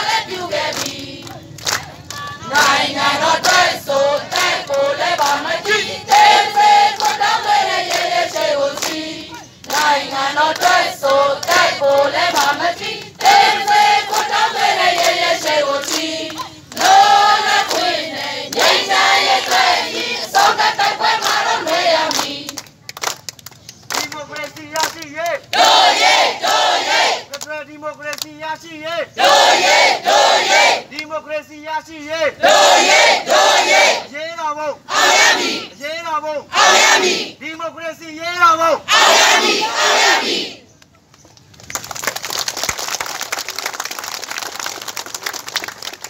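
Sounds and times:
crowd chanting: 0.0 - 22.6, 25.5 - 27.3, 29.2 - 30.9, 32.3 - 34.1, 34.8 - 35.8, 36.5 - 37.4, 38.7 - 40.6
hand claps: 0.7 - 2.8, 3.4 - 5.8, 6.9 - 9.9, 10.5 - 17.0, 17.6 - 17.9, 21.2 - 25.7, 27.3 - 28.4
crowd shouting in unison: 25.6 - 27.2, 32.4 - 34.1, 34.9 - 35.8, 36.5 - 37.4, 38.9 - 40.6
crowd applauding: 41.6 - 46.0.

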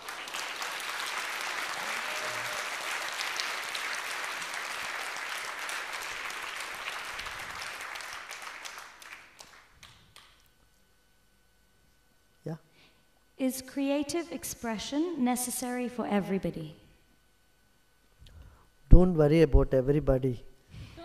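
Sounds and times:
audience applauding: 0.0 - 10.4.

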